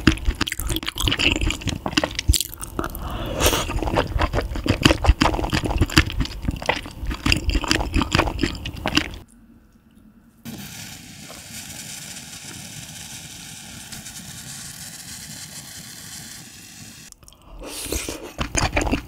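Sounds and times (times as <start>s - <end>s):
person chewing crunchy food: 0.0s - 9.3s, 17.1s - 19.0s.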